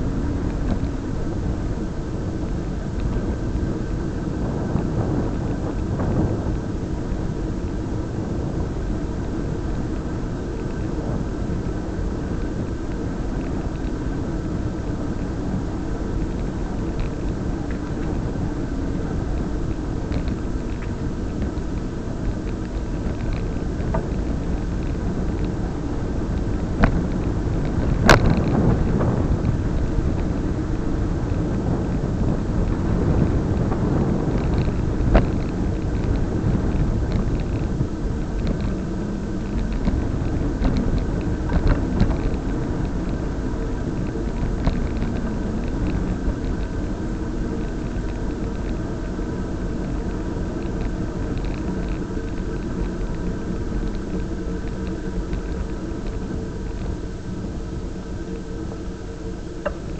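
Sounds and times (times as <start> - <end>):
road noise: 0.0 - 59.9
wind rumble on microphone: 0.0 - 59.9.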